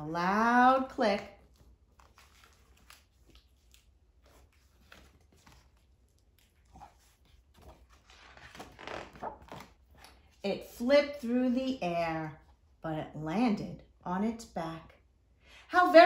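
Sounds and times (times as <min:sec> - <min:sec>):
paper rustling: 0:00.7 - 0:10.4.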